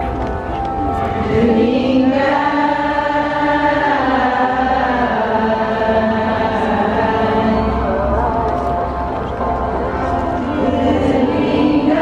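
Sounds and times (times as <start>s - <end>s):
crowd singing in unison: 0.0s - 12.0s.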